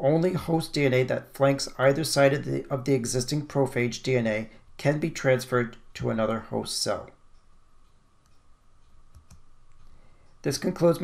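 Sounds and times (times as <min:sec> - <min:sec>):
faint steady hum: 0:00.0 - 0:11.0
faint clicks: 0:07.1 - 0:10.4.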